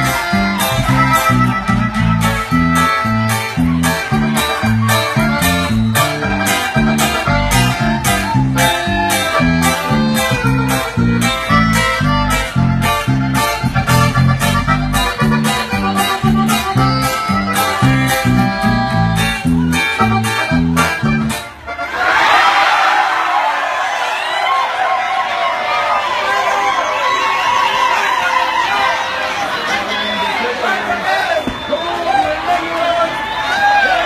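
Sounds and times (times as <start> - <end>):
crowd cheering and whistling: 0.0 - 20.8, 21.5 - 34.0
live band music: 0.0 - 22.2.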